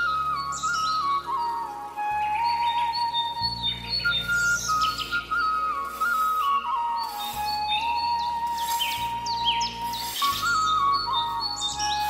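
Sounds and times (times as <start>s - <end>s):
bird chirps: 0.0s - 12.0s
simple melody over low tones: 0.0s - 12.0s.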